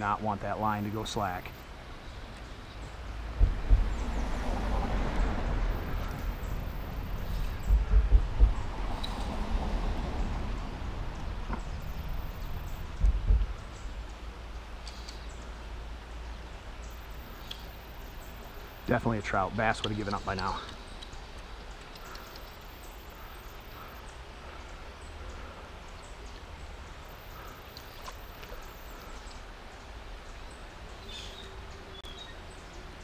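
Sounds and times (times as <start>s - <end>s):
wind buffeting microphone: 3.0s - 14.2s
river water hissing: 8.7s - 33.0s.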